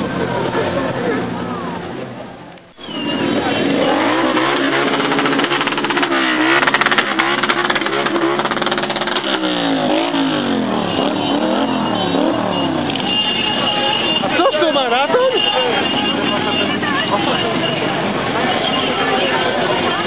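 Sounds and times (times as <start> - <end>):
crowd in background: 0.0 - 20.0
motorcycle engines revving: 0.0 - 20.0.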